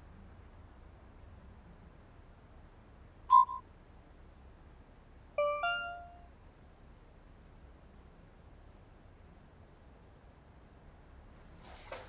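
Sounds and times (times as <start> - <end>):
two-note rising chime: 5.4 - 6.2
short high message ping: 5.4 - 6.3.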